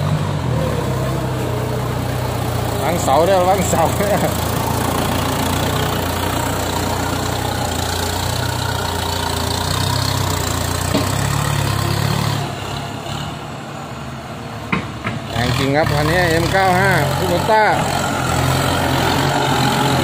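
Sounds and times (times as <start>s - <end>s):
tractor diesel engine running: 0.0s - 20.0s.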